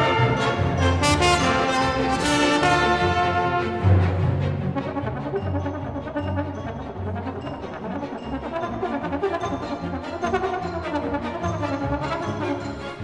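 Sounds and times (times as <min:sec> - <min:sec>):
solo trombone: 0:00.0 - 0:04.0
string orchestra: 0:00.0 - 0:13.0.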